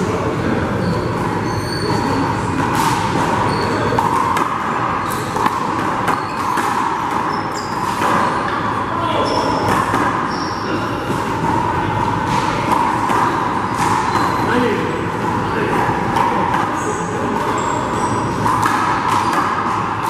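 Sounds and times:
sneaker squeaks: 0:00.0 - 0:20.0
steady room hum: 0:00.0 - 0:20.0.

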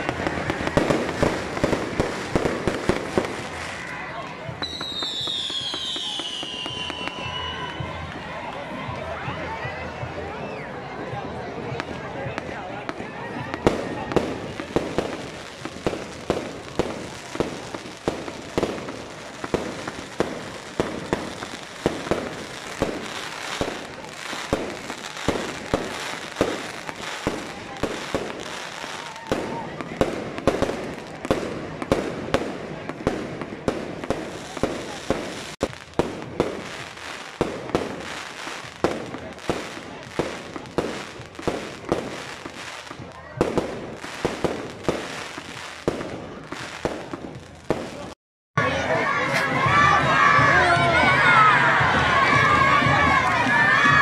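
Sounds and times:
fireworks bursting: 0:00.0 - 0:08.9, 0:11.7 - 0:48.2
crowd voices: 0:00.0 - 0:54.0.

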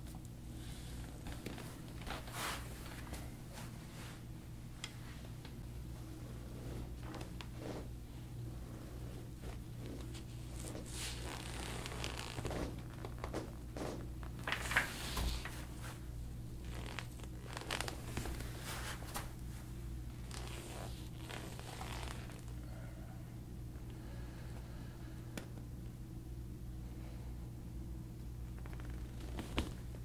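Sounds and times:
steady low hum: 0:00.0 - 0:30.0
hands rubbing skin and hair: 0:06.0 - 0:08.0, 0:08.6 - 0:22.5.

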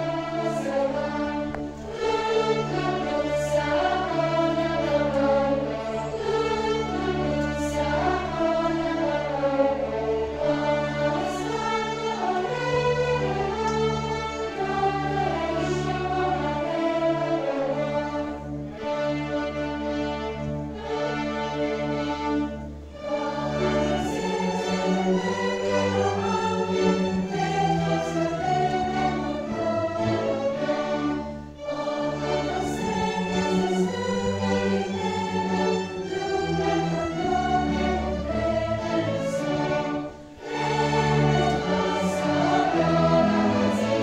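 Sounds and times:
choir singing: 0:00.0 - 0:44.0
violins and cellos playing: 0:00.0 - 0:44.0.

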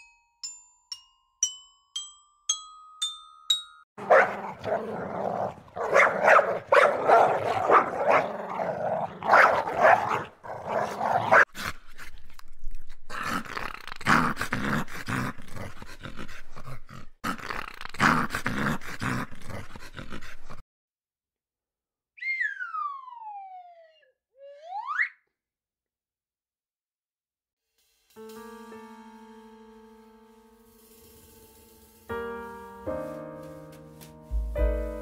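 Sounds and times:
puppies growling and yipping: 0:04.0 - 0:11.5
gliding whistle-like tone: 0:22.2 - 0:25.2.

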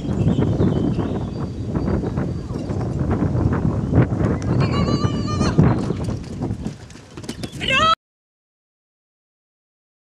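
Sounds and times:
dog paws on wooden plank: 0:05.7 - 0:07.8.

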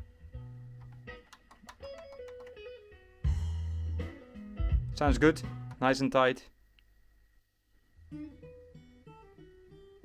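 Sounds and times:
guitar music over speakers: 0:00.0 - 0:05.8, 0:08.0 - 0:10.0.

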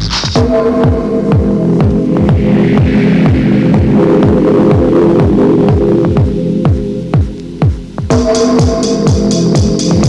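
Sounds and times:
techno kick drum: 0:00.0 - 0:10.0
droning chord: 0:00.4 - 0:10.0
hi-hat ticks: 0:04.3 - 0:10.0.

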